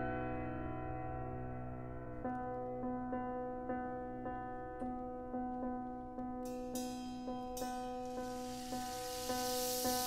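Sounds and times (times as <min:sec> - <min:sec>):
soft hissing noise: 0:08.0 - 0:10.0.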